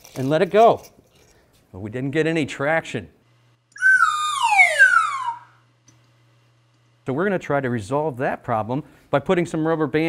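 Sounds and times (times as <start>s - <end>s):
comic falling whistle: 3.8s - 5.6s.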